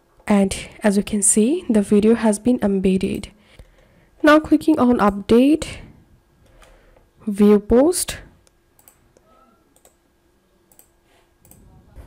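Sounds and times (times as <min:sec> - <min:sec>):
computer mouse clicking: 0:08.4 - 0:10.0, 0:10.7 - 0:11.7.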